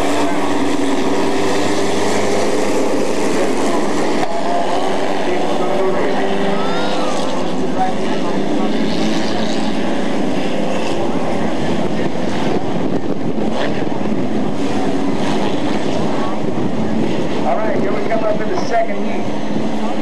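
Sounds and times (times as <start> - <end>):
race car engines roaring: 0.0 - 20.0.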